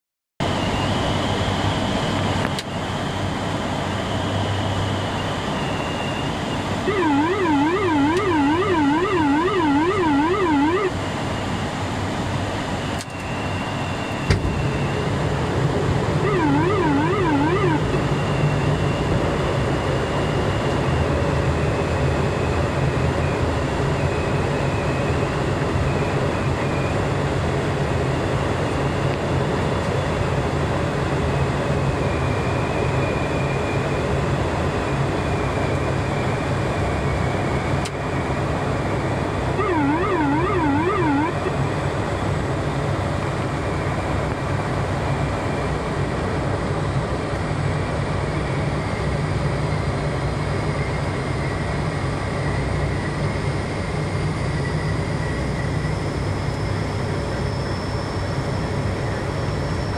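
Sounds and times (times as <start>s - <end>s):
turboprop engines droning: 0.4s - 59.9s
warbling electronic alert: 6.8s - 11.0s, 16.2s - 18.0s, 39.6s - 41.6s.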